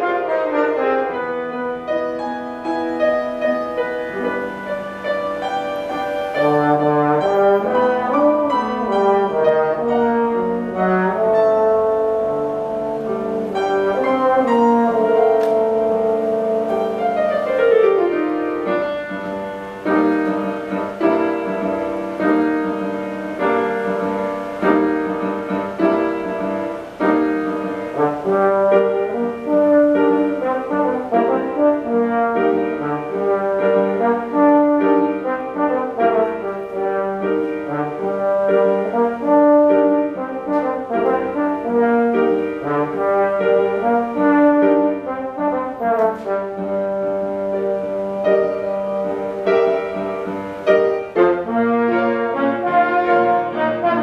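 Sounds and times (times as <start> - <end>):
grand piano accompaniment: 0.0 - 54.0
slide trombone melody: 0.0 - 54.0.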